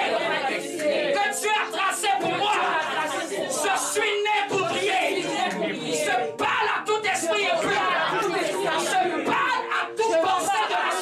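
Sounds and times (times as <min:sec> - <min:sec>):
man praying into a microphone: 0:09.2 - 0:11.0.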